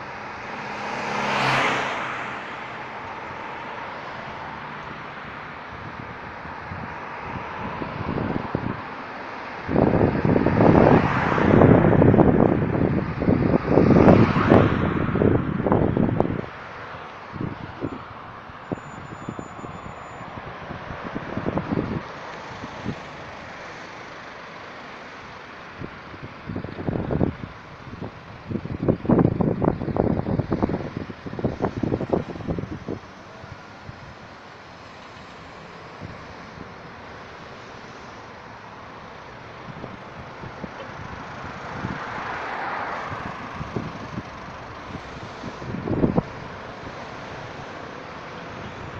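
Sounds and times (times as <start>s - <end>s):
cars driving past: 0.0s - 48.9s
wind buffeting microphone: 5.7s - 9.0s, 9.6s - 23.6s, 25.7s - 34.9s, 39.3s - 42.4s, 43.0s - 47.8s.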